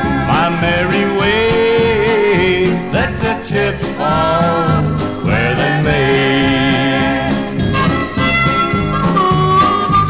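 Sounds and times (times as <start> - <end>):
instrumental country music: 0.0 - 10.0.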